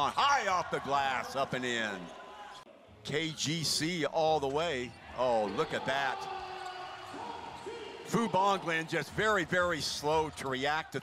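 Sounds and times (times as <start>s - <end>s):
hum of crowd and court noise: 0.0s - 11.0s.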